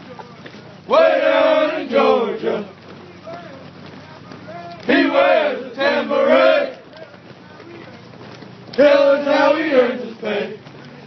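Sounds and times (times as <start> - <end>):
soldiers chanting cadence in unison: 0.9 - 2.7, 4.8 - 6.8, 8.8 - 10.6.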